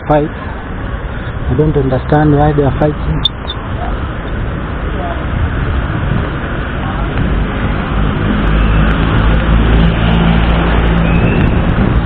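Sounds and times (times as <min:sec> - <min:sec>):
city street traffic: 0:00.0 - 0:12.0
motor vehicle engine: 0:00.0 - 0:12.0.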